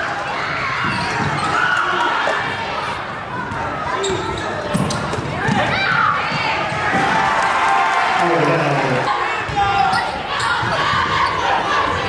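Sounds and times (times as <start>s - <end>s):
sneakers squeaking: 0.8s - 1.8s, 3.5s - 5.7s, 9.6s - 11.6s
people calling out: 8.1s - 12.0s.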